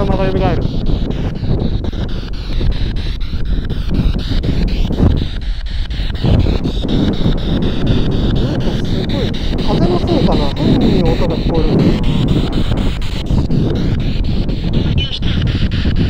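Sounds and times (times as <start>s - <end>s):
chopped radio static: 0.0s - 16.0s
wind noise on microphone: 0.0s - 16.0s.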